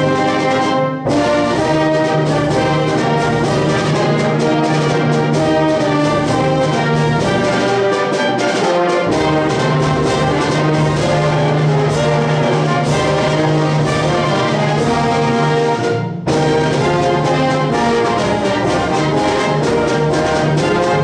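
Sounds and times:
concert band playing brass chords: 0.0 - 21.0.

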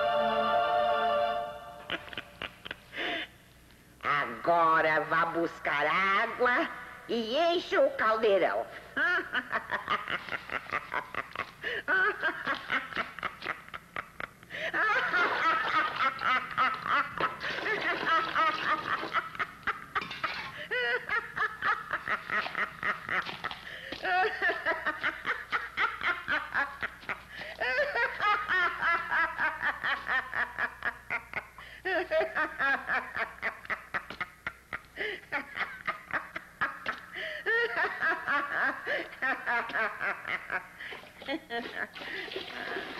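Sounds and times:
high-pitched cackling laughter: 1.8 - 3.0, 9.0 - 42.9.

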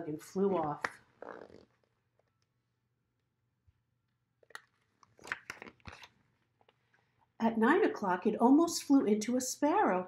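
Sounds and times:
paper pages turning: 4.5 - 6.8.

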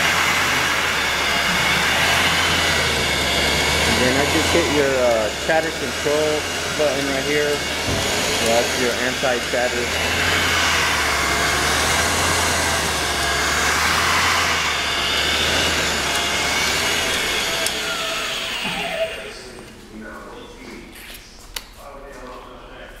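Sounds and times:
brake lathe motor hum and whine: 0.0 - 19.3.

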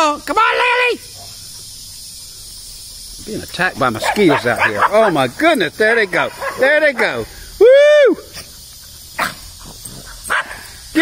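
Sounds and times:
dogs barking: 3.9 - 7.2, 9.0 - 10.8.

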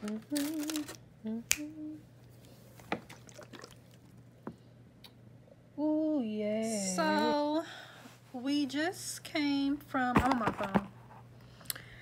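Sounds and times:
person humming two notes: 0.0 - 2.0
sharp snap: 1.5 - 1.7.

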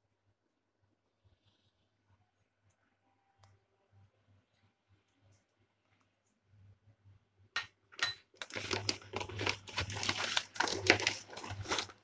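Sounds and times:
pumpkin pieces rustling in colander: 8.4 - 12.0.

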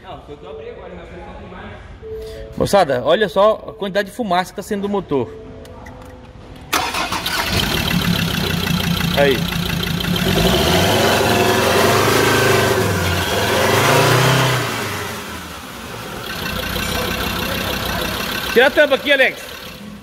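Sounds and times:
diesel engine revving: 6.8 - 20.0.

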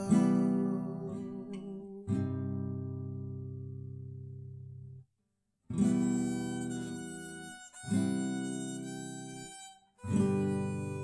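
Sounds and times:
acoustic guitar chords ringing: 0.0 - 4.8.

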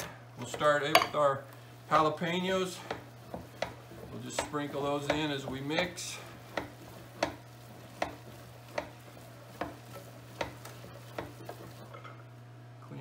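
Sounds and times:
hand-cranked meat mixer knocking: 0.4 - 1.2, 1.9 - 12.0.

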